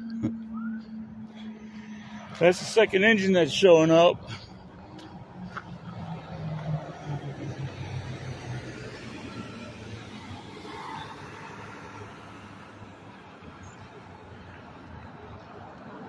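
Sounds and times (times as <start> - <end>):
diesel engine humming: 0.0 - 16.0
street noise: 0.0 - 16.0.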